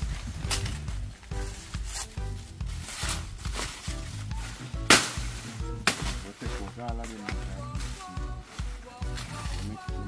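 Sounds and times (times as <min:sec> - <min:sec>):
music with steady bass line: 0:00.0 - 0:10.0
machete chops into plant stalk: 0:04.8 - 0:06.3.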